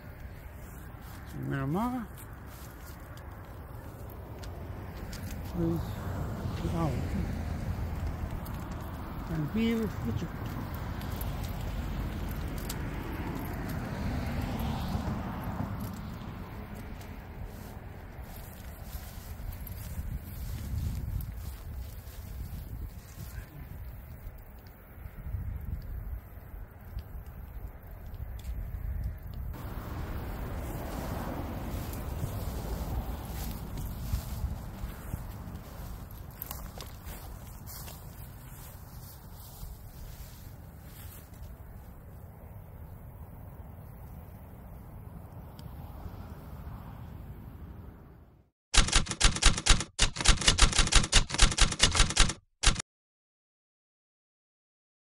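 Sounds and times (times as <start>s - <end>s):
footsteps through grass: 0.0s - 14.4s, 15.8s - 24.3s, 29.6s - 42.3s
faint wind: 0.0s - 52.8s
wind buffeting microphone: 18.2s - 40.2s
typewriter key clicks: 48.8s - 52.8s.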